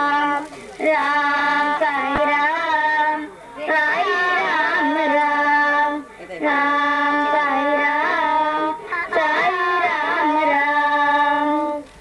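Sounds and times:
girls singing: 0:00.0 - 0:11.9.

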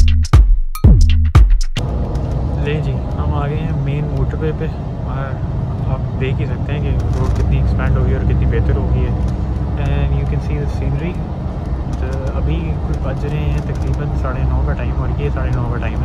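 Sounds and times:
coach engine rumble: 0:01.8 - 0:16.0
people talking: 0:02.6 - 0:09.2, 0:09.8 - 0:11.2, 0:12.0 - 0:16.0.

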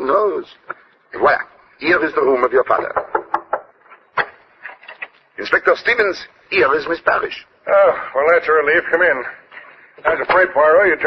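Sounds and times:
knocking on wooden door: 0:02.9 - 0:03.7.

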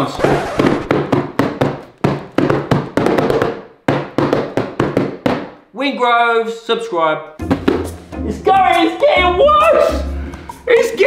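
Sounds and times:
hands slapping plastic-wrapped boxes: 0:00.8 - 0:05.6.

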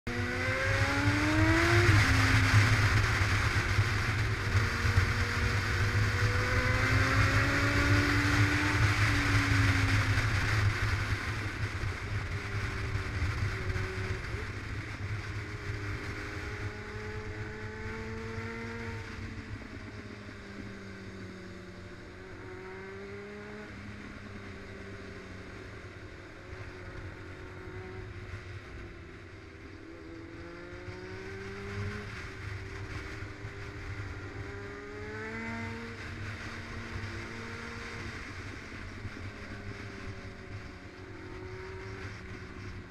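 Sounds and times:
motorcycle engine revving: 0:00.0 - 0:42.9.

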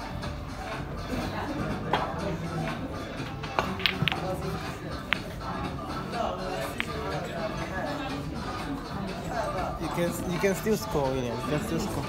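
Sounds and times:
background music: 0:00.0 - 0:12.0
pool balls clicking: 0:03.3 - 0:08.0.

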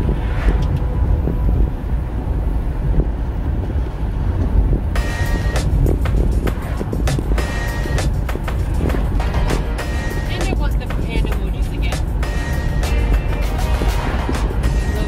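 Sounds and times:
car road rumble inside cabin: 0:00.0 - 0:15.0
music playing: 0:04.9 - 0:15.0.

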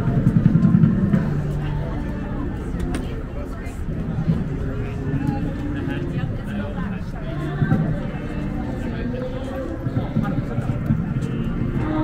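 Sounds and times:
faint voices: 0:00.0 - 0:12.0
low engine rumble: 0:00.0 - 0:12.0.

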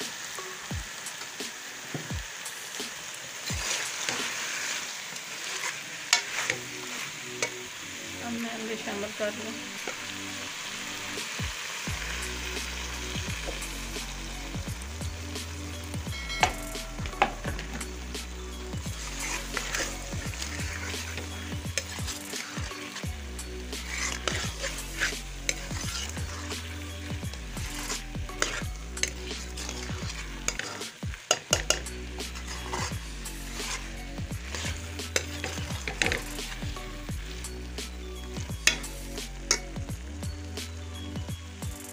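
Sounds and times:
potatoes sizzling in a pot: 0:00.0 - 0:41.9
spoon scraping a metal pot: 0:03.4 - 0:07.6, 0:18.8 - 0:36.9, 0:38.6 - 0:39.7
spoon knocking on pot: 0:16.3 - 0:17.8, 0:31.3 - 0:31.8.

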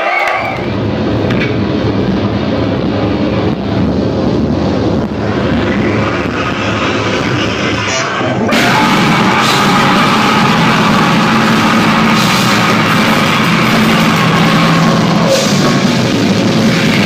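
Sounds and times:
distorted live metal music: 0:00.4 - 0:17.0.

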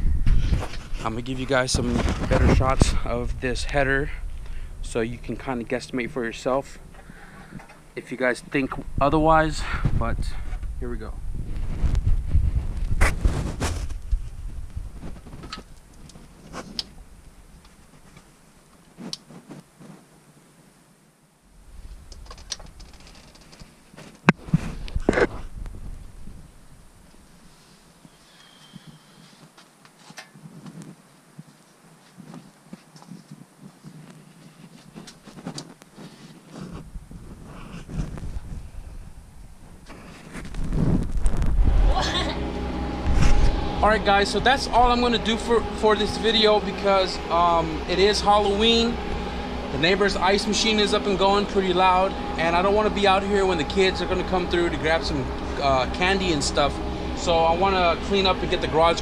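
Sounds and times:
wind rumble on microphone: 0:00.0 - 0:18.0, 0:24.3 - 0:27.5, 0:33.0 - 0:59.0.

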